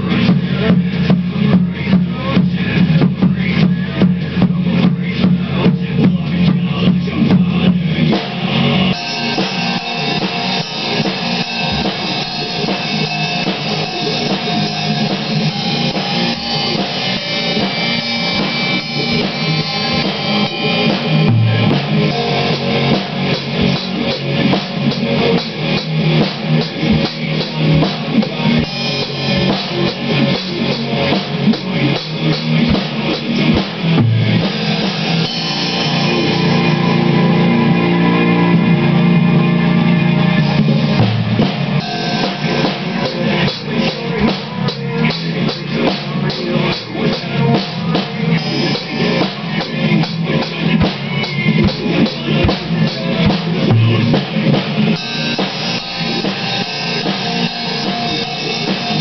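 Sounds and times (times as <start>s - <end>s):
drum kit played hard: 0.0s - 59.0s
rock song with guitars: 0.0s - 59.0s.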